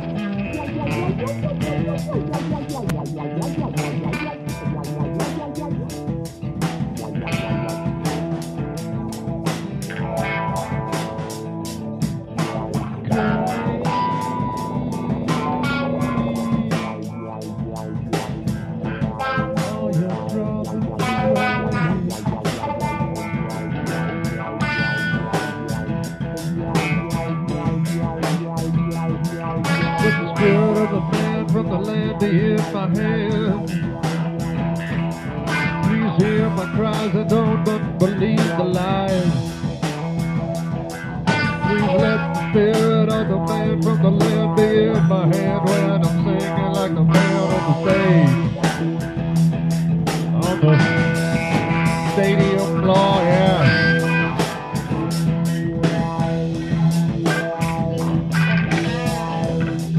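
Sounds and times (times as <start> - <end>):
bass guitar: 0.0 - 59.9
electric guitar: 0.0 - 59.9
steady drum beat: 0.0 - 59.9.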